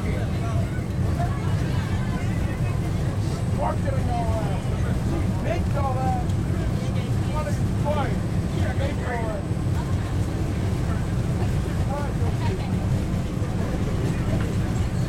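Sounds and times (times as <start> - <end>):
faint passenger voices: 0.0 - 15.0
subway train rumbling: 0.0 - 15.0.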